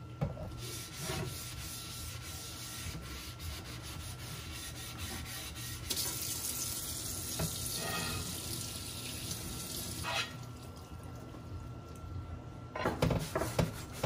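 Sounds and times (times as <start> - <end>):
sponge scrubbing tray: 0.6 - 6.1
water running into sink: 5.8 - 10.9.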